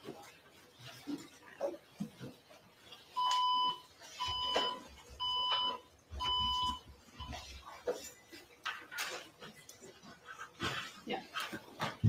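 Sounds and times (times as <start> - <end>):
electronic beeps: 3.2 - 7.4.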